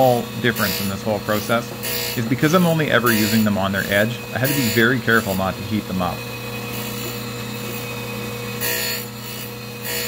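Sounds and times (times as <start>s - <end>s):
grinder motor humming: 0.0s - 10.0s
grinding wheel on steel: 0.0s - 10.0s.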